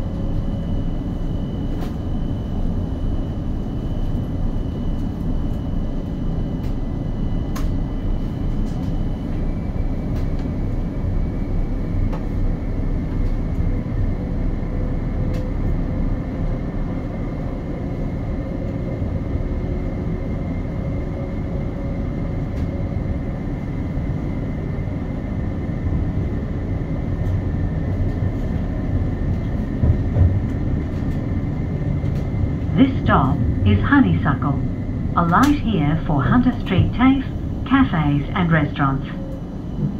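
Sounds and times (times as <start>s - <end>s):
tram wheels rumbling on rail: 8.5s - 39.9s.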